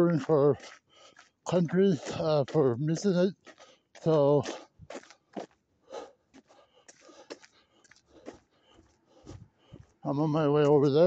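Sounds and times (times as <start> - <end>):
footsteps crunching on snow: 0.0 - 11.0.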